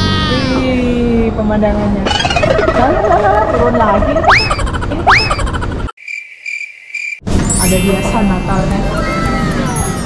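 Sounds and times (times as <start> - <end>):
cricket chirping sound effect: 5.2 - 7.8.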